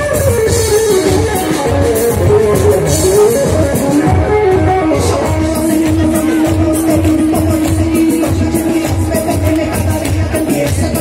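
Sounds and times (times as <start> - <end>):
bass: 0.0 - 11.0
electric guitar: 0.0 - 11.0
steady drum beat: 0.0 - 11.0.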